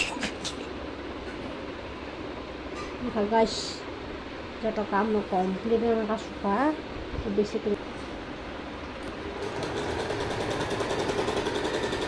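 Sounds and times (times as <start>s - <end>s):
steady background noise: 0.0s - 9.5s.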